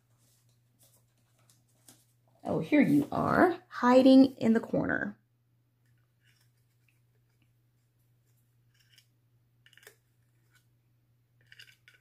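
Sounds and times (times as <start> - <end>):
pencils clicking and tapping: 11.4 - 12.0.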